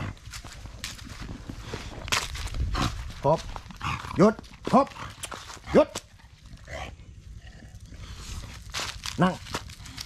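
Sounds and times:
footsteps on dry leaves: 0:00.0 - 0:05.7, 0:08.1 - 0:10.0.

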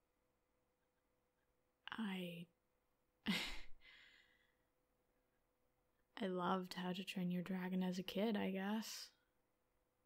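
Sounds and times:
woman sighing: 0:03.3 - 0:04.5.

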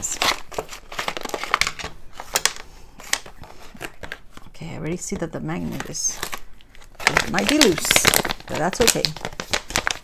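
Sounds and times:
sharp paper crackles: 0:00.0 - 0:04.2, 0:05.6 - 0:10.0
paper packaging crinkling: 0:00.0 - 0:10.0.

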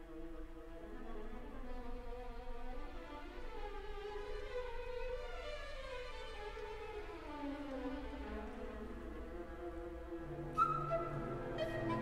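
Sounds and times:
orchestra bowed strings: 0:00.0 - 0:12.0.

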